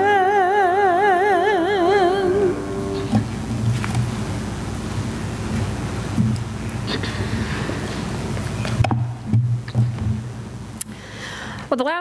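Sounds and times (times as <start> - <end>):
microphone hiss: 0.0 - 12.0
low hum: 1.1 - 6.6.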